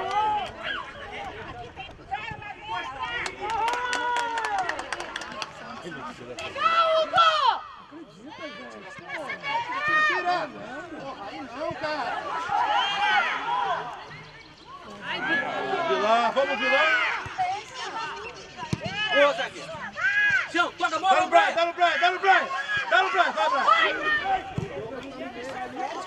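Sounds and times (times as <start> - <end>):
coaches and players shouting: 0.0 - 4.9, 5.6 - 26.0.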